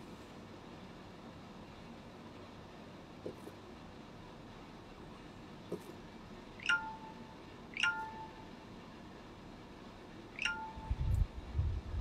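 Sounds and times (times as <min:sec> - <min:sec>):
electronic notification chime: 0:06.6 - 0:07.2, 0:10.4 - 0:11.0.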